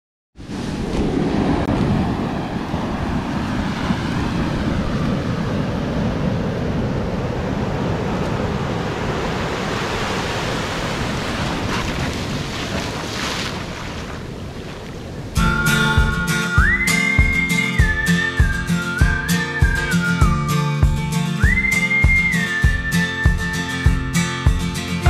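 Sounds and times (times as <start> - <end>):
ocean waves breaking on beach: 0.4 - 20.1.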